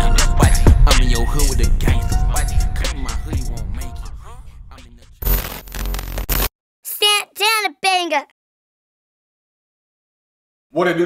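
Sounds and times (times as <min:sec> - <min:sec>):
high-pitched voice drawn-out syllables: 0:06.9 - 0:08.3.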